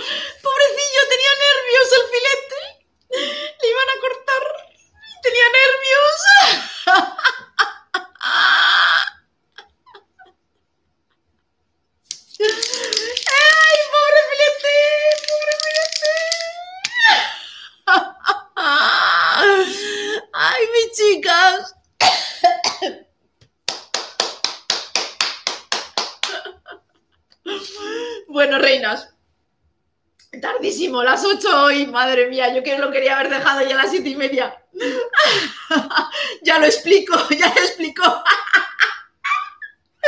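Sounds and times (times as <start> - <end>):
woman laughing: 6.2 - 11.2, 12.3 - 19.8, 26.2 - 28.1, 34.8 - 36.3, 37.3 - 39.8.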